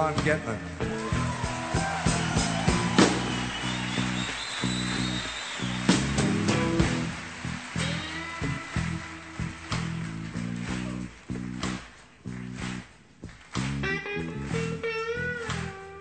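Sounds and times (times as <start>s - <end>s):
bass line: 0.0s - 16.0s
drums: 0.0s - 16.0s
sliding guitar solo: 13.8s - 16.0s.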